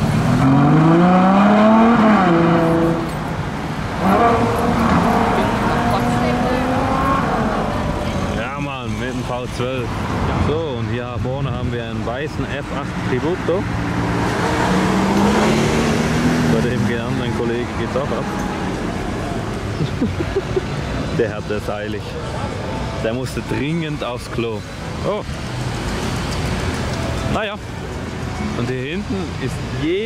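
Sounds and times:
car accelerating away: 0:00.0 - 0:08.4, 0:13.7 - 0:19.4
voices: 0:01.6 - 0:30.0.

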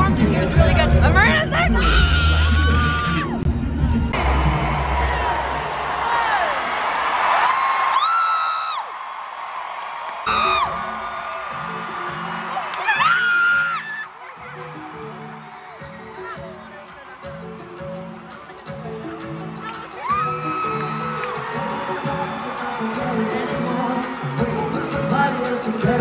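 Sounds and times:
loud music with heavy bass: 0:00.0 - 0:06.8, 0:17.2 - 0:26.0
crowd screaming and cheering: 0:00.0 - 0:26.0
high screams close to microphone: 0:01.8 - 0:03.4, 0:07.3 - 0:08.9, 0:10.2 - 0:11.8, 0:12.4 - 0:14.2, 0:20.0 - 0:22.6.

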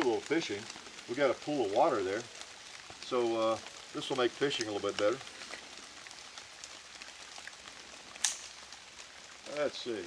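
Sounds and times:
rain hissing in woods: 0:00.0 - 0:10.0.

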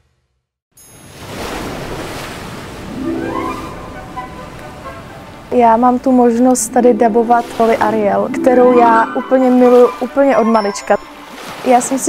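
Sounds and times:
ocean waves breaking: 0:00.9 - 0:12.0
rising tone: 0:03.0 - 0:05.4, 0:06.5 - 0:11.7.

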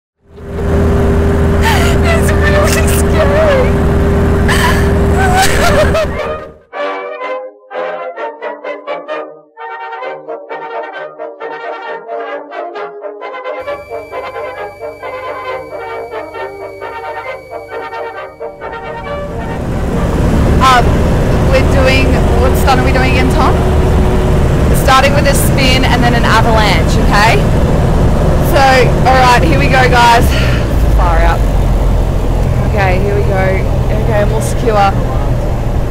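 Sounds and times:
aircraft engine droning: 0:00.3 - 0:06.6, 0:13.6 - 0:35.9
voices: 0:01.6 - 0:06.5, 0:13.6 - 0:27.6, 0:28.4 - 0:31.6, 0:32.4 - 0:35.6.

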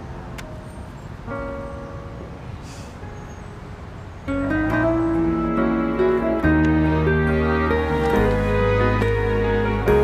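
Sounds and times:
low street rumble: 0:00.0 - 0:10.0
soft instrumental music: 0:03.3 - 0:10.0.

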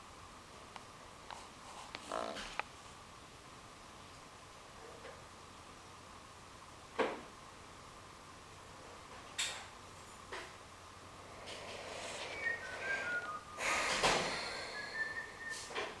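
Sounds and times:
short whistle-like notes: 0:11.9 - 0:15.9
faint steady high tone: 0:12.0 - 0:16.0.

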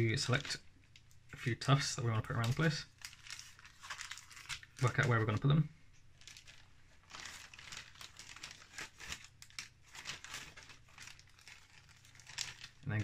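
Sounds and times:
plastic packaging crinkling: 0:02.2 - 0:13.0.

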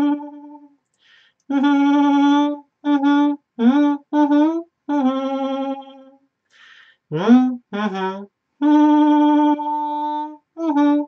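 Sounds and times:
woman humming a melody: 0:00.0 - 0:00.7, 0:01.5 - 0:06.2, 0:07.1 - 0:11.0.

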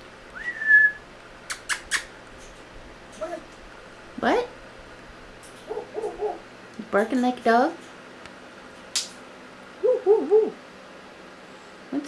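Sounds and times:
parrot hooting: 0:05.6 - 0:06.5, 0:09.8 - 0:10.6.

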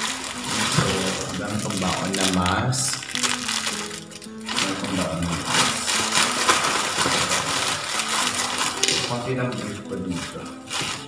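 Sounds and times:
plastic bags rustling and crinkling: 0:00.0 - 0:11.0.

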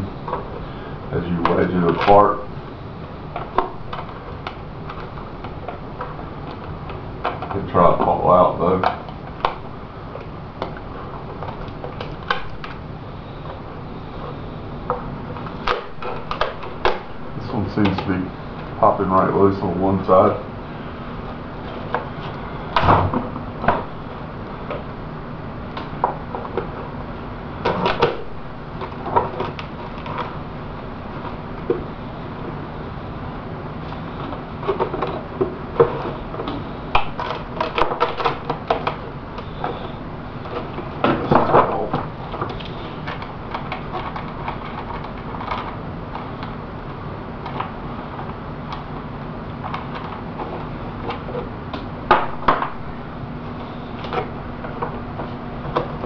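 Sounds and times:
fiberglass shell crackling and clicking: 0:08.8 - 0:17.3, 0:33.8 - 0:52.7.

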